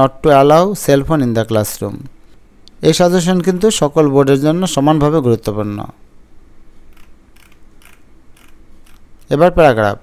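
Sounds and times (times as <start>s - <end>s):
low steady hum: 0.0s - 10.0s
computer mouse clicks: 6.9s - 9.3s.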